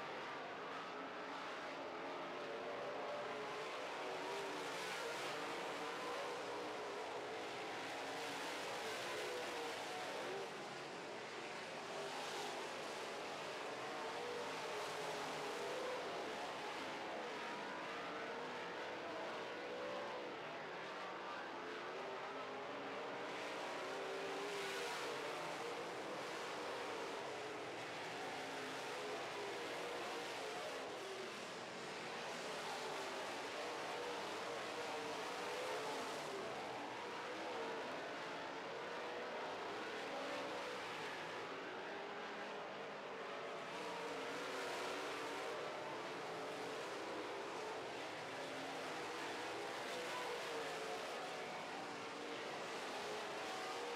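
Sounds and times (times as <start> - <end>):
race car engines: 0.1 - 53.9.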